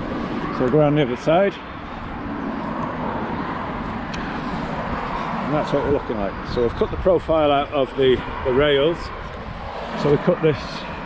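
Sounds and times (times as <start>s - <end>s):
road traffic rushing: 0.0s - 11.0s.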